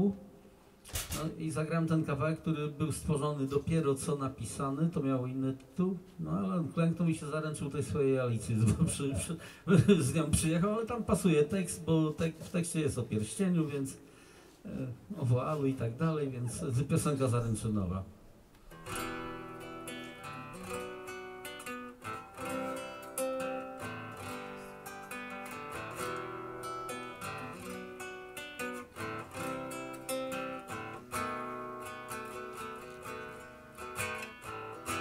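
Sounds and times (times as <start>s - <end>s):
acoustic guitar picking and strumming: 18.7s - 35.0s.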